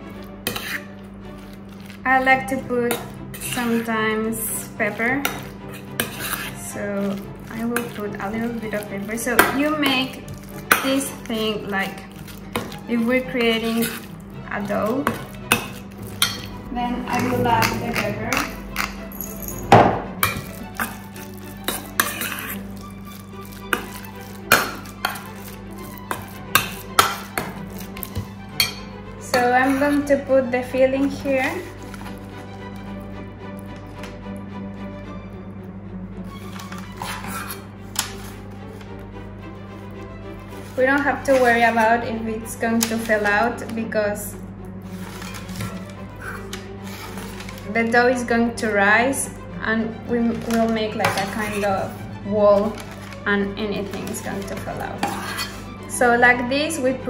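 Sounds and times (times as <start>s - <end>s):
spoon stirring wet mix: 0.0s - 34.4s, 36.2s - 56.8s
spoon clinking on metal bowl: 15.0s - 16.5s, 17.1s - 21.0s, 26.0s - 29.9s.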